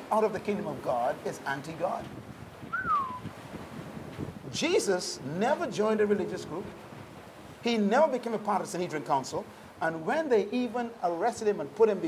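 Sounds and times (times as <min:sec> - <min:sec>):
wind noise: 0:00.8 - 0:04.9, 0:05.6 - 0:07.7
whistle-like gliding note: 0:02.7 - 0:03.3.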